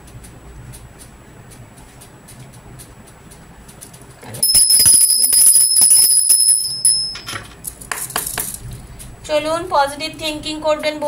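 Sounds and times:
small metal bell ringing rapidly: 4.4 - 7.4.

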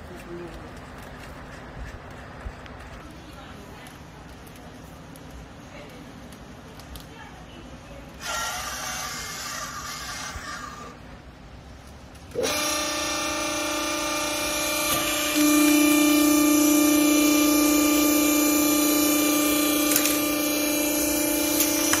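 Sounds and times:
rustling: 0.0 - 7.2
hydraulic power unit humming: 8.0 - 11.3, 12.1 - 22.0.

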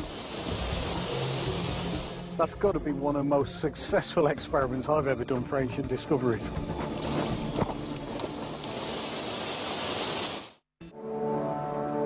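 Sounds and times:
steam hissing off hot rocks: 0.0 - 2.6, 6.8 - 10.6.

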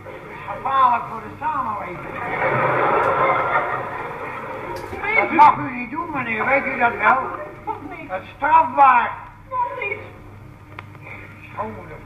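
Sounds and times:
audience laughing: 0.0 - 0.8, 2.0 - 5.6
man speaking: 0.4 - 2.2, 5.0 - 9.2.

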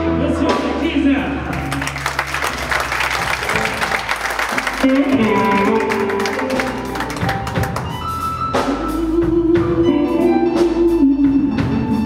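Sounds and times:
live blues band playing: 0.0 - 12.0.

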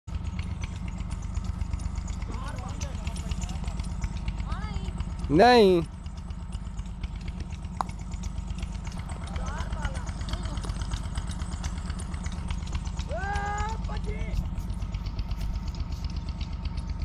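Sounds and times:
boy shouting: 13.1 - 14.4.

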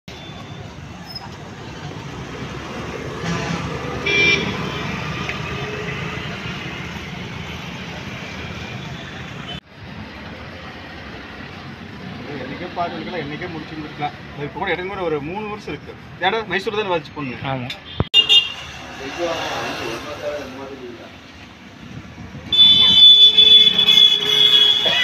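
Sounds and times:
road traffic passing: 0.1 - 25.0
vehicle horn: 3.2 - 5.0, 22.5 - 25.0.

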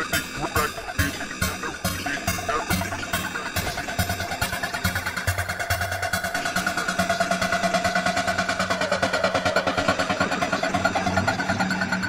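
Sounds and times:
fast electronic beat: 0.0 - 11.6
sustained synth tone: 0.0 - 12.0.

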